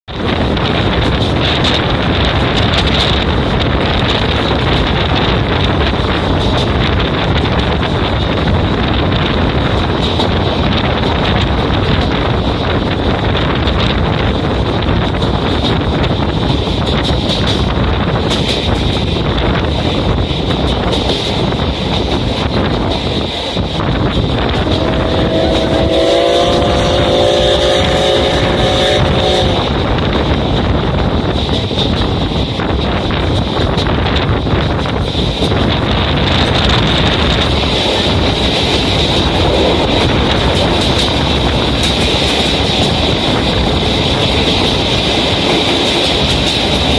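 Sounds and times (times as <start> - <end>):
rail running noise: 0.0 - 46.9
wind rush at train window: 0.0 - 46.9
train horn with held tones: 24.6 - 29.7.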